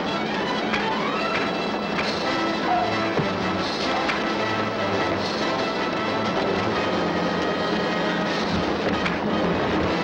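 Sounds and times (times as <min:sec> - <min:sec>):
faint music: 0:00.0 - 0:10.0
loud steady roaring: 0:00.0 - 0:10.0.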